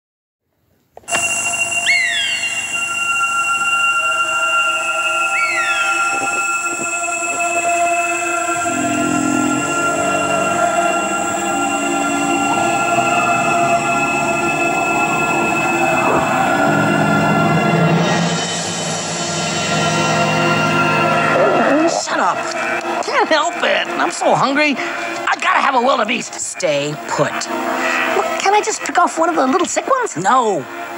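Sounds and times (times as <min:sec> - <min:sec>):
deeper held notes: 0:01.1 - 0:28.6
film score drone of held notes: 0:01.1 - 0:29.0
short high falling cries: 0:01.2 - 0:03.4.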